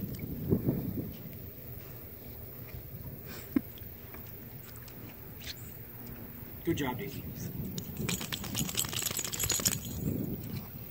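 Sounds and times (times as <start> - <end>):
dog shaking water off: 7.8 - 10.1
metal collar tag jingling: 7.8 - 10.4.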